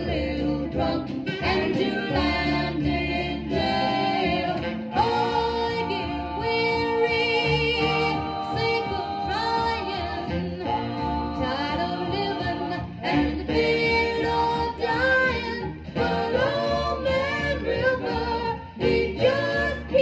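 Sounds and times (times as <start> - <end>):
vocal group singing in harmony: 0.0 - 20.0.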